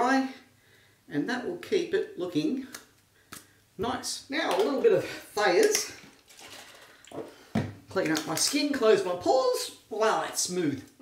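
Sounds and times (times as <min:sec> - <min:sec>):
man speaking: 0:00.0 - 0:00.5, 0:01.1 - 0:02.8, 0:03.8 - 0:06.0, 0:07.9 - 0:10.9.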